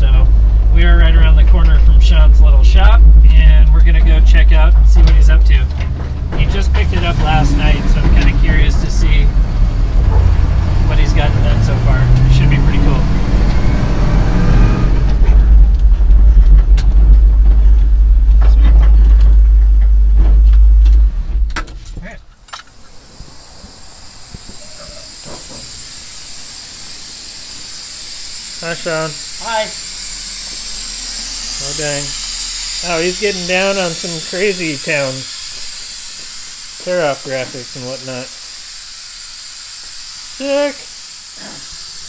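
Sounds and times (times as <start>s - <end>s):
road rumble inside cab: 0.0s - 25.8s
pickup truck engine: 0.0s - 42.0s
steady hiss: 6.4s - 13.2s, 22.3s - 42.0s.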